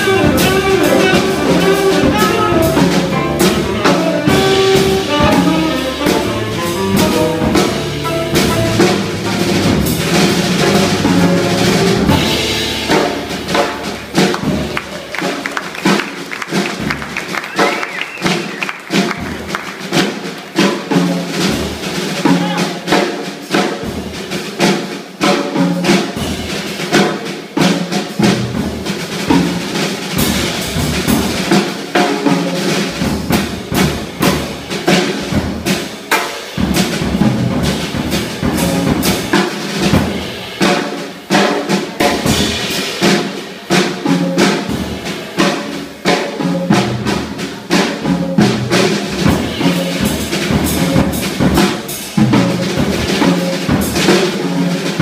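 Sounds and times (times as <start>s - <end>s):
electric bass: 0.0s - 15.0s
jazz quartet playing: 0.0s - 55.0s
rapid drum kit strikes: 0.0s - 55.0s.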